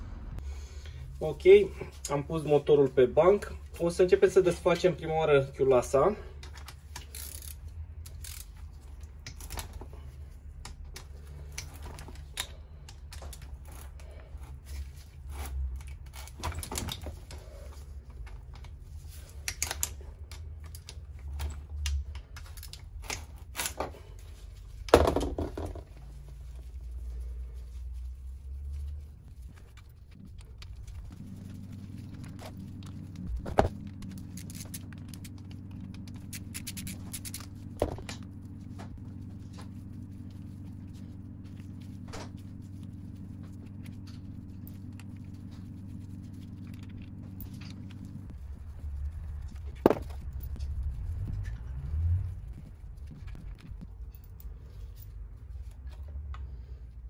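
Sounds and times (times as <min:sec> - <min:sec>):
low steady hum: 0:00.0 - 0:57.0
ratchet wrench clicking: 0:06.9 - 0:08.6, 0:36.1 - 0:37.5.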